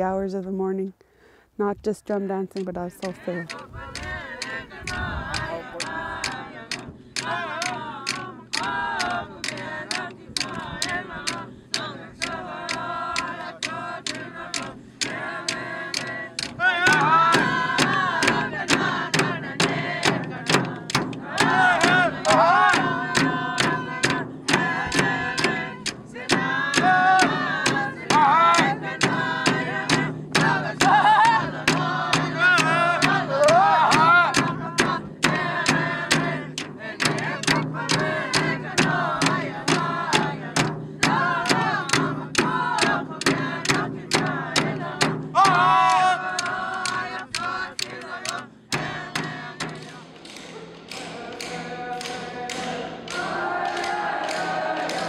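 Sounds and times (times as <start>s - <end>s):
group of voices singing: 2.6s - 55.0s
frame drums struck with sticks: 5.3s - 55.0s.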